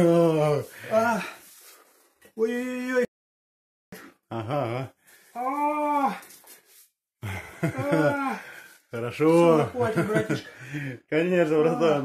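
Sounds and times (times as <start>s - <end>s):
man's wordless cry: 2.4s - 3.1s, 7.6s - 8.5s.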